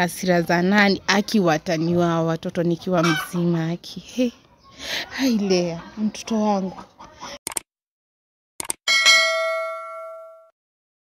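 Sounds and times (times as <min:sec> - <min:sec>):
bright bell ding: 0:08.9 - 0:10.5.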